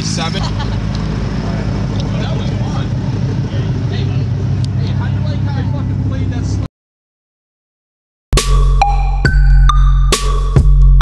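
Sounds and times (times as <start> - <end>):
sports car engine idling: 0.0 - 6.5.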